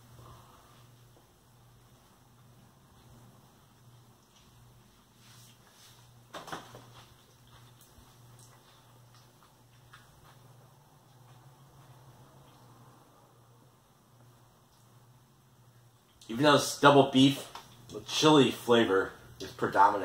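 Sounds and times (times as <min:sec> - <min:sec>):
steady low hum: 0:00.0 - 0:20.0
man chewing food: 0:00.8 - 0:13.1.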